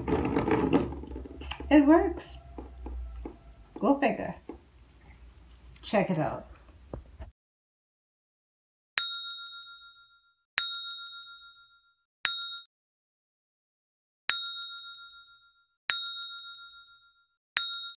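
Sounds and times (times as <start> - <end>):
notification bell dings: 9.0 - 12.7, 14.3 - 18.0.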